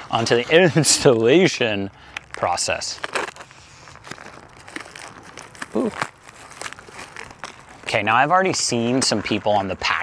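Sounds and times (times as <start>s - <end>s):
packaging crinkling and rustling: 0.1s - 10.0s.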